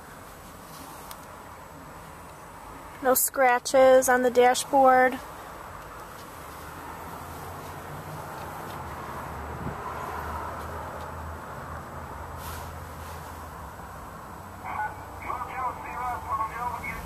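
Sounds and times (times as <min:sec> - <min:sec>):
car cabin hum and hiss: 0:00.0 - 0:17.0
person talking: 0:03.0 - 0:05.2, 0:14.6 - 0:17.0.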